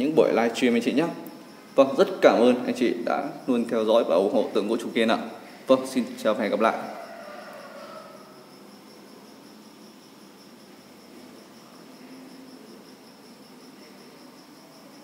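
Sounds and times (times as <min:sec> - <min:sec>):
faint room hiss: 0:00.0 - 0:15.0.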